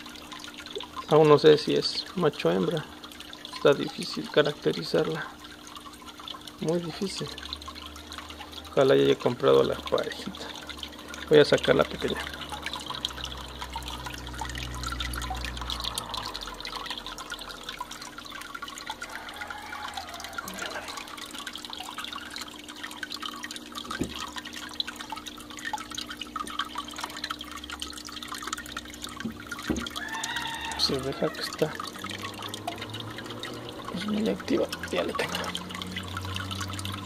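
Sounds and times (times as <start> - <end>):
small knocks and splashes: 0.0 - 37.0
water trickling and splashing: 0.0 - 37.0.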